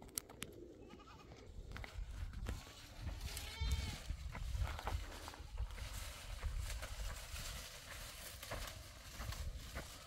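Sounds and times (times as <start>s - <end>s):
goat bleating: 0.8s - 1.4s, 3.2s - 4.1s.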